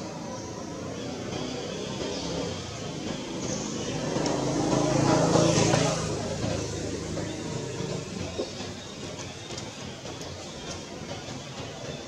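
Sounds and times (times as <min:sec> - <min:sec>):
motor vehicle passing: 0:01.0 - 0:08.6.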